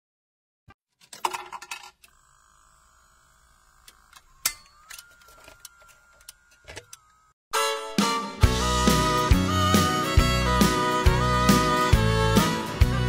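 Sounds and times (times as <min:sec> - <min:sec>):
jukebox mechanism whirring: 0:01.0 - 0:07.4.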